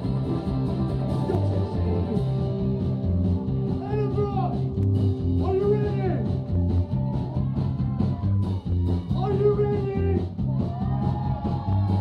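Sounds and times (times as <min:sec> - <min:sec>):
electric guitars: 0:00.0 - 0:09.2
bass pulse: 0:00.0 - 0:12.0.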